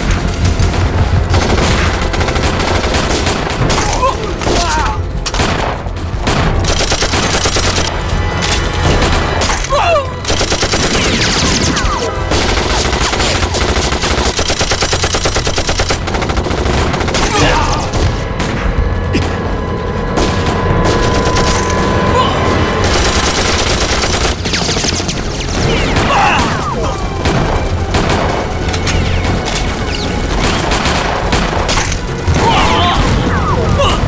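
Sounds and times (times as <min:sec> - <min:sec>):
machine-gun fire: 0:00.0 - 0:04.0, 0:05.2 - 0:08.0, 0:10.2 - 0:19.5, 0:22.8 - 0:33.3
rifle shots: 0:05.3 - 0:07.9, 0:10.2 - 0:18.7, 0:27.2 - 0:32.4.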